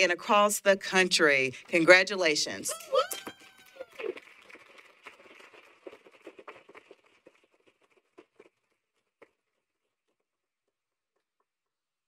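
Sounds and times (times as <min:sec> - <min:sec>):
person cheering woo: 0:02.7 - 0:04.2
group applauding: 0:02.7 - 0:09.4.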